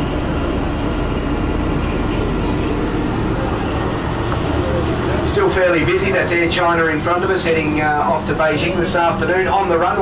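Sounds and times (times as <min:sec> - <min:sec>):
bus engine rumble and hum: 0:00.0 - 0:10.0.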